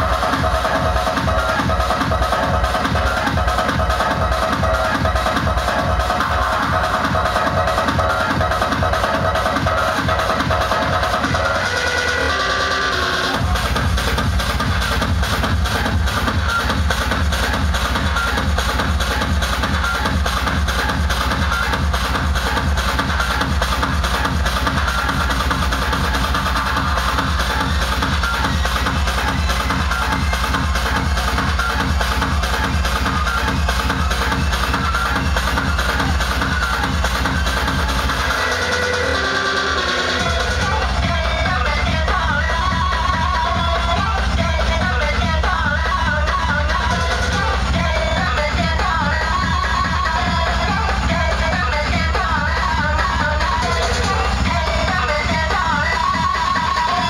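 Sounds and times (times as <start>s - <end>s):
loud techno music: 0.0s - 57.0s.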